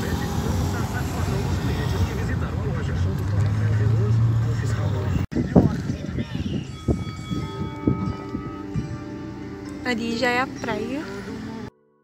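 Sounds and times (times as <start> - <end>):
car engine and road noise: 0.0 - 11.7
faint voices: 0.0 - 11.7.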